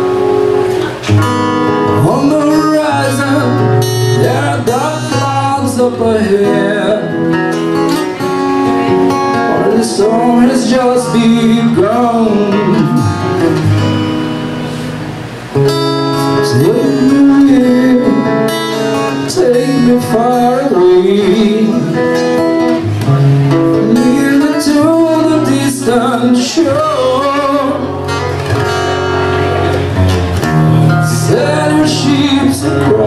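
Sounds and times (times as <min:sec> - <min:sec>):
acoustic guitar chord strummed: 0:00.0 - 0:33.0
man singing: 0:01.9 - 0:13.6, 0:16.3 - 0:22.8, 0:23.5 - 0:28.3, 0:30.8 - 0:33.0.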